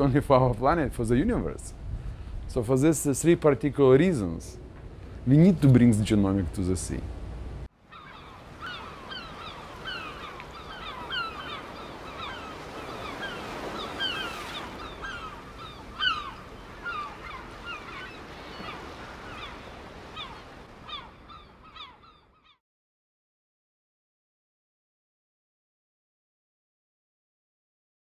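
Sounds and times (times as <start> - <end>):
flock of birds calling: 7.9 - 22.6.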